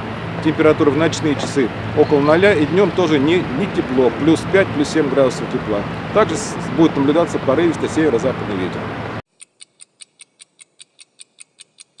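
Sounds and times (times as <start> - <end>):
high sharp ticking: 9.3 - 12.0.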